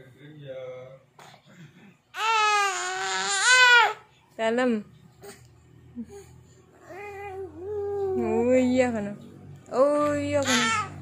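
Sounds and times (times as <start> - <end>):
baby crying: 2.1 - 4.1, 6.8 - 8.4, 10.4 - 11.0.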